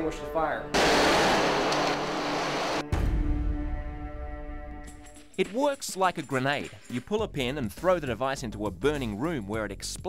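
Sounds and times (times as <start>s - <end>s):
background music of held notes: 0.0s - 0.8s.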